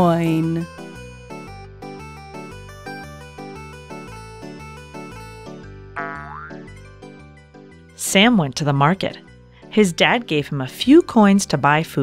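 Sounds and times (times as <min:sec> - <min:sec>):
light background music: 0:00.0 - 0:12.0
cartoon downward pitch slide: 0:06.0 - 0:06.6.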